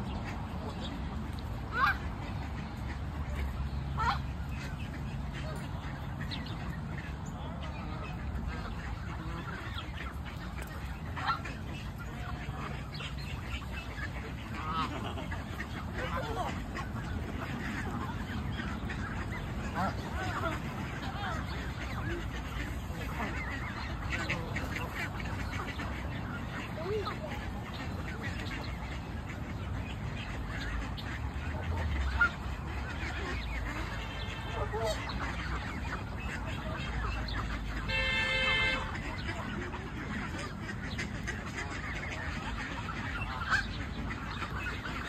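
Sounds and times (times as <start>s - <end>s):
geese calling: 0.0s - 45.0s.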